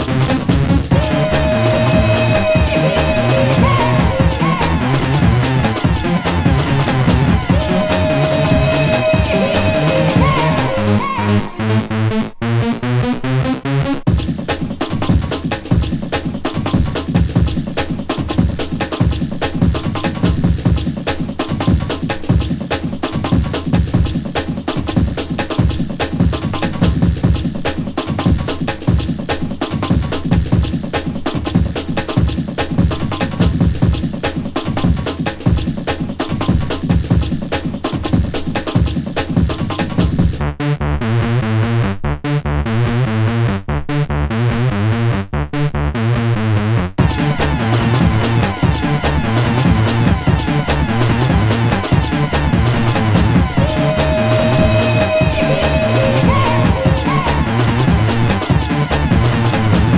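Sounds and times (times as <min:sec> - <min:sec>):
fast drum pattern: 0:00.0 - 0:11.8, 0:14.0 - 0:40.4, 0:47.0 - 0:59.9.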